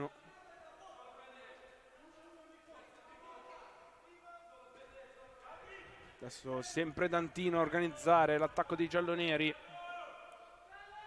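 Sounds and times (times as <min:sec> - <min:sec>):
low hall noise: 0:00.0 - 0:11.0.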